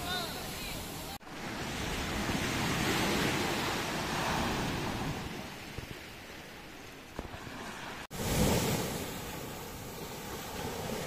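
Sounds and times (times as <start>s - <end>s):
sea waves washing ashore: 0.0s - 11.0s.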